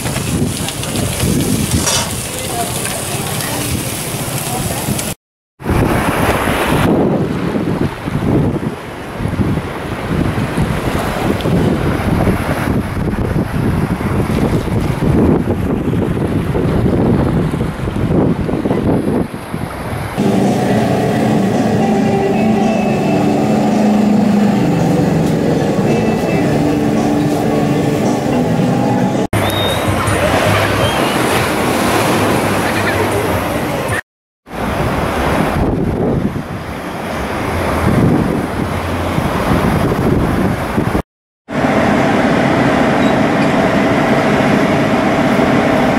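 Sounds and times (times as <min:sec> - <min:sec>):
wind buffeting microphone: 0:00.0 - 0:22.0, 0:29.3 - 0:45.9
held low tones: 0:20.2 - 0:31.1, 0:41.5 - 0:45.9.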